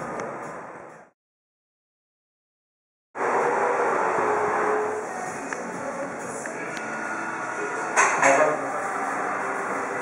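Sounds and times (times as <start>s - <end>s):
busy restaurant background noise: 5.0s - 10.0s.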